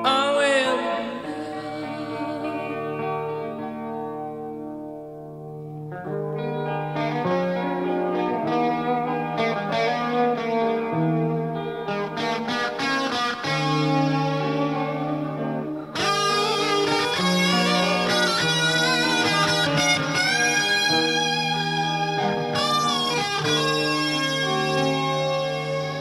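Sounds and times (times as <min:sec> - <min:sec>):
lead guitar melody with vibrato: 0:00.0 - 0:26.0
slow rock ballad on electric guitars: 0:00.0 - 0:26.0.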